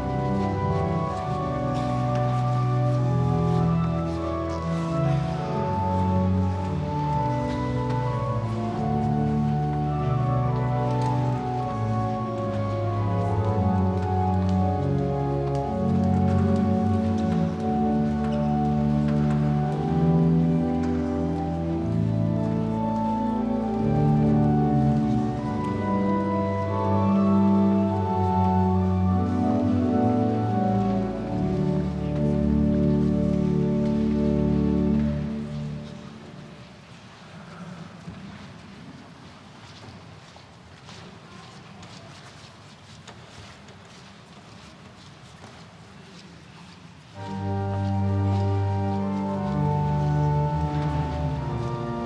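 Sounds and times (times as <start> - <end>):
church organ playing chords: 0.0 - 35.9, 47.2 - 52.0
light steady rustle: 0.0 - 52.0.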